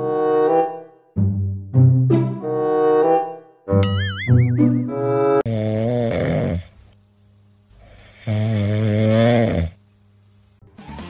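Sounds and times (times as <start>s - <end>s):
cat snoring: 5.5s - 6.9s, 7.8s - 9.8s.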